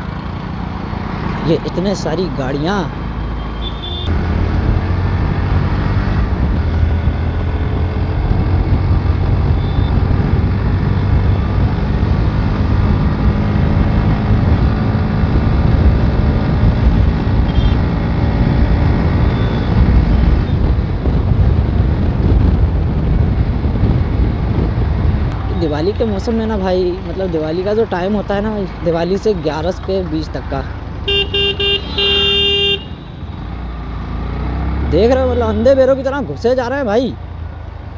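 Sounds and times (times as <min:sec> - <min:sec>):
wind rumble on microphone: 0:04.0 - 0:28.6.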